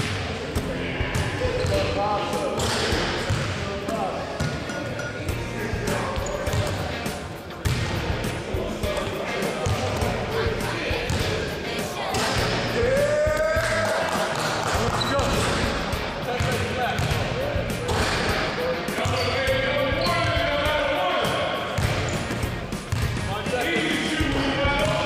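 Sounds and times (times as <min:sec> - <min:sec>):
background music: 0:00.0 - 0:25.0
voices: 0:00.0 - 0:25.0
basketballs bouncing on floor: 0:01.5 - 0:01.9, 0:02.6 - 0:03.6, 0:06.2 - 0:06.8, 0:07.6 - 0:07.9, 0:16.4 - 0:17.3, 0:19.0 - 0:19.3, 0:21.8 - 0:23.3.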